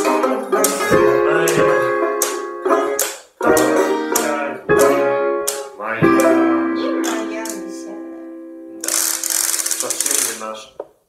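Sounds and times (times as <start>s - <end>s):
plucked string notes ringing: 0.0s - 8.9s.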